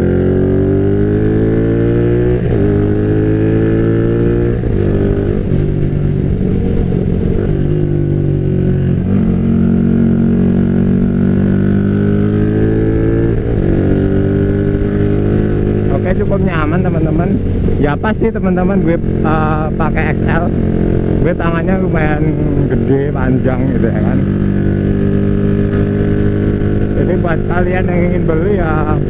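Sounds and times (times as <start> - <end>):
motorcycle engine accelerating: 0.0 - 29.0.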